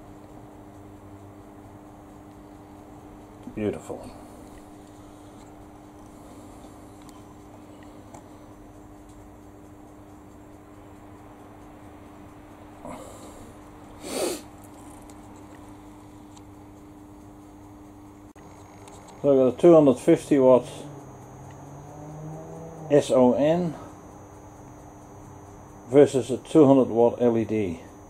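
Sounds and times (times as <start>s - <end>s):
low mains hum: 0.0s - 28.0s
faint breath: 12.8s - 14.5s
person sniffing: 12.8s - 14.6s.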